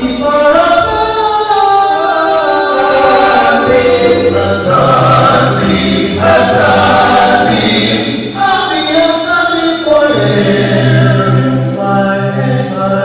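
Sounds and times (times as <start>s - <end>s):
male vocal quartet singing: 0.0s - 13.0s.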